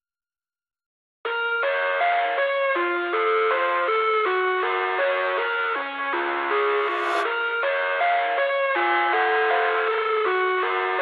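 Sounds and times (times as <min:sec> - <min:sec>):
instrumental pop music: 0:01.3 - 0:11.0.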